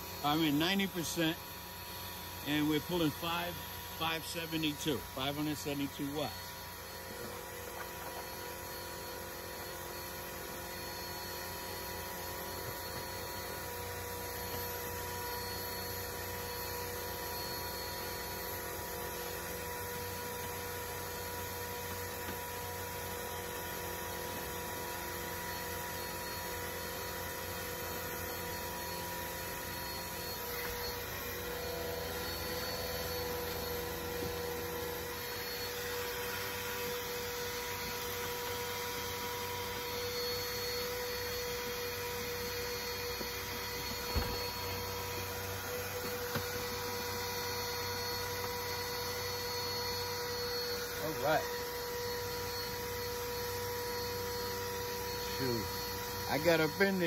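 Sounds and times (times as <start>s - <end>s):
vacuum cleaner running: 0.0s - 57.0s.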